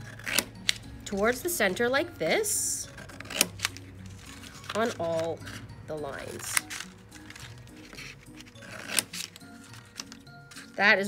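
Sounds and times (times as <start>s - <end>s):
scissors cutting paper plate: 0.0s - 0.8s, 2.8s - 5.7s, 6.4s - 10.8s
soft background music: 0.0s - 11.0s.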